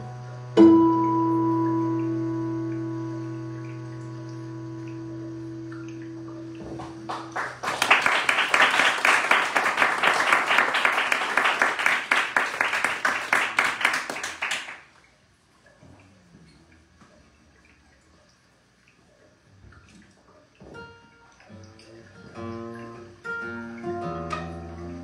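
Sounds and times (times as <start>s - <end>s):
low steady drone: 0.0s - 7.4s
audience applause: 6.8s - 14.9s.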